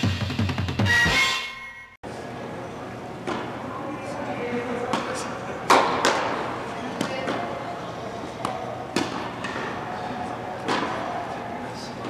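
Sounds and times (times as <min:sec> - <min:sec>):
tennis ball bouncing on court: 0:03.2 - 0:03.6, 0:04.8 - 0:07.7, 0:08.3 - 0:11.2
tennis racket hitting ball: 0:03.2 - 0:03.6, 0:04.8 - 0:11.3.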